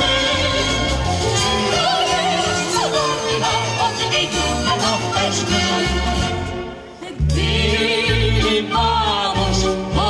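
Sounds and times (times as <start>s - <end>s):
amplified backing music: 0.0s - 10.0s
man and woman singing duet: 7.0s - 10.0s.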